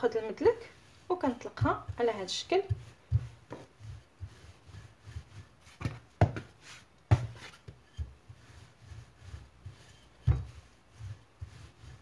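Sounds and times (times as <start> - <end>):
rolling pin rumbling on wooden table: 1.2 - 12.0
rolling pin knocks: 5.7 - 8.2, 10.2 - 10.6.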